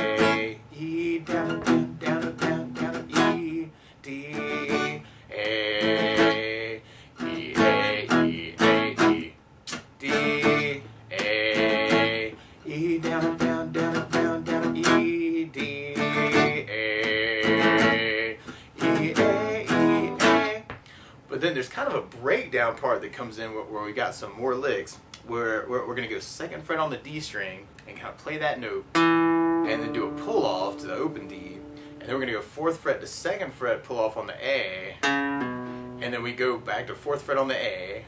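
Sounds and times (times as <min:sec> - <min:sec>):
acoustic guitar strumming: 0:00.0 - 0:20.8, 0:28.9 - 0:32.5, 0:34.4 - 0:37.9.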